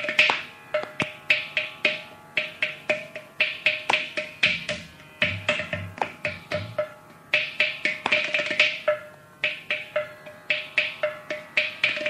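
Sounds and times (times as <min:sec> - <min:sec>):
drum strokes: 0:01.3 - 0:12.0.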